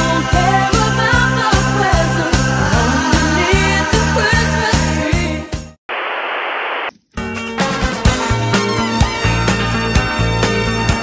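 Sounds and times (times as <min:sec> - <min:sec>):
christmas pop music: 0:00.0 - 0:05.8
static hiss: 0:05.9 - 0:06.9.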